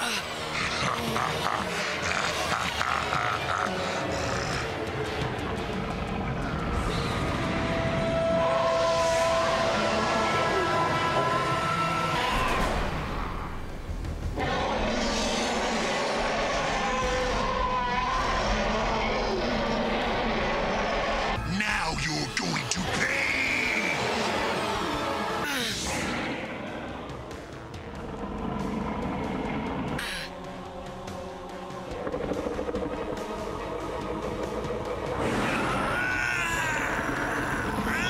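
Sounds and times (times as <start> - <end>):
deep monstrous laughter and roaring: 0.0 - 7.9, 22.9 - 38.0
background music: 0.0 - 38.0.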